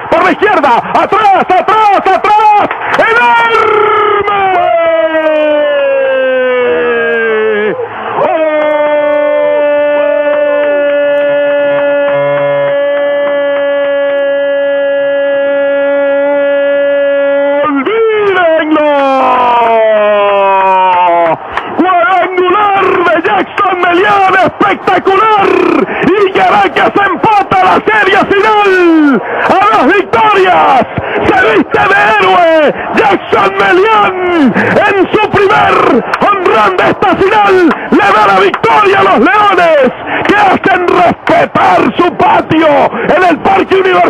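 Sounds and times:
announcer shouting on radio: 0.0 - 21.0, 21.8 - 44.0.

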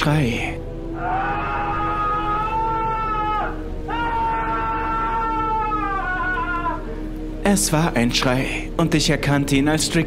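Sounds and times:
low music drone: 0.0 - 10.0
man screaming: 0.9 - 7.0.

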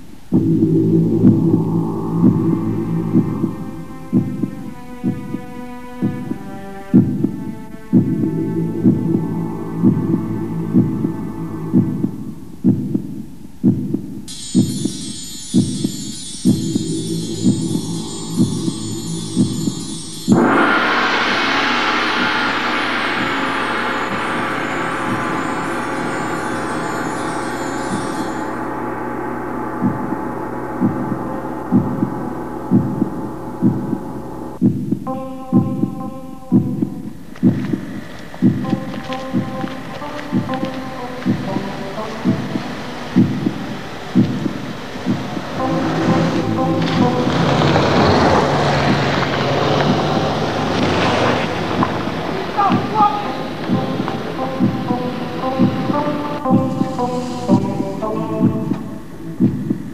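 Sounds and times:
low droning hum: 0.3 - 4.7, 7.8 - 12.7, 16.8 - 34.6, 38.5 - 59.5
low heavy thumps: 0.3 - 5.4, 6.0 - 14.7, 30.8 - 59.9.

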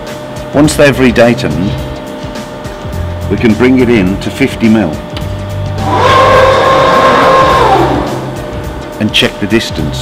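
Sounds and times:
motor whine: 0.0 - 10.0.

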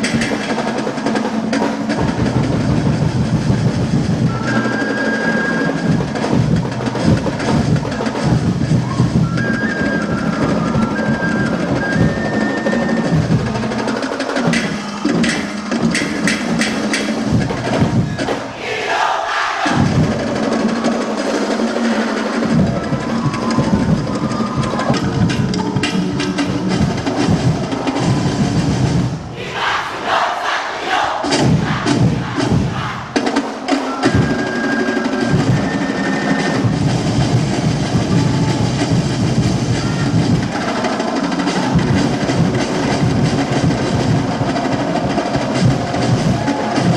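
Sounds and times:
percussion-driven dance music: 0.0 - 46.9
performers shouting together: 18.0 - 21.1, 26.9 - 35.8, 37.7 - 46.9
sharp crisp drum strikes: 22.5 - 34.4.

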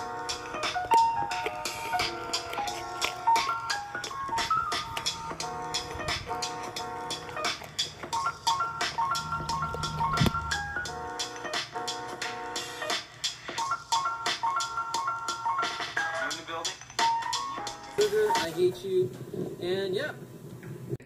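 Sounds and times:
background music with steady beat: 0.0 - 19.6.

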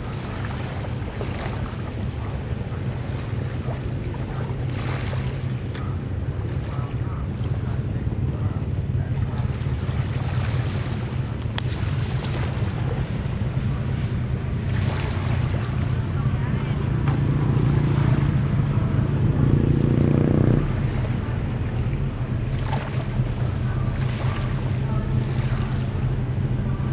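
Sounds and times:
low engine hum: 0.0 - 26.9
small waves washing in: 0.0 - 26.9.

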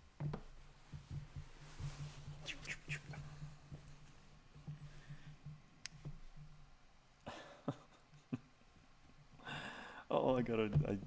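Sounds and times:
handling noises near microphone: 0.2 - 6.6.

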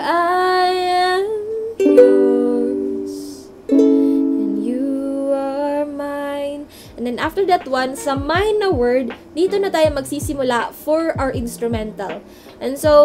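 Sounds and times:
woman singing: 0.0 - 13.0
ukulele strums: 1.8 - 4.9.

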